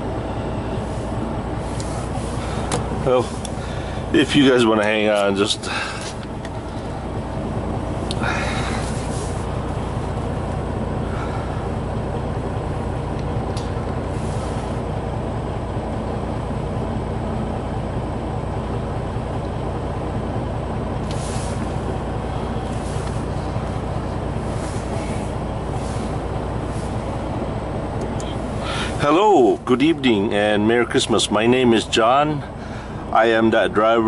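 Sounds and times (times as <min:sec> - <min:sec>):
diesel truck engine rumble: 0:00.0 - 0:34.0
brief hissing noises: 0:21.1 - 0:21.7.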